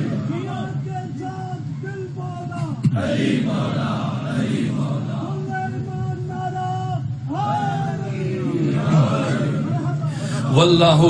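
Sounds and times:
steady low hum: 0.0s - 11.0s
man chanting a held note: 5.0s - 11.0s.

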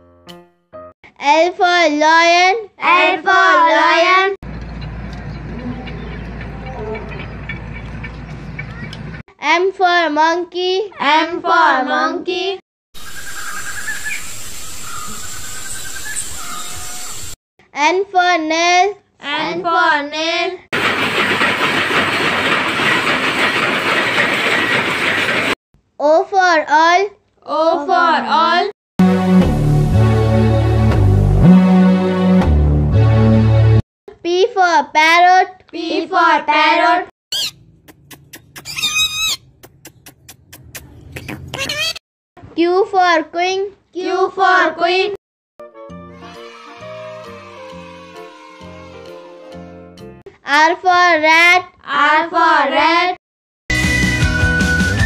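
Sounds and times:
high wildlife calls: 13.0s - 17.3s, 37.3s - 41.9s
steady forest hiss: 13.0s - 17.3s
parakeet squawking: 37.3s - 37.6s, 38.2s - 42.0s.

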